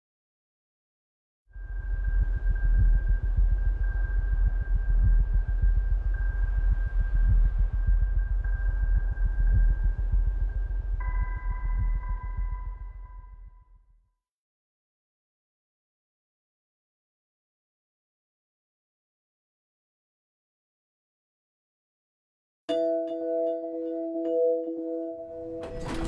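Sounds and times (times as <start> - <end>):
deep pulsing rumble: 1.6 - 13.5.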